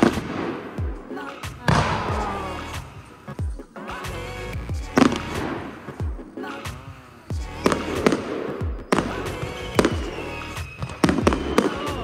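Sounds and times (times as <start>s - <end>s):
fireworks bursting: 0.0s - 4.2s, 4.8s - 12.0s.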